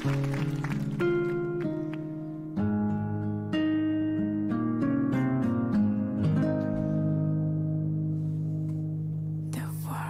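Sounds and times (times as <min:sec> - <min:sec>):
guitar plucked notes: 0:00.0 - 0:09.6.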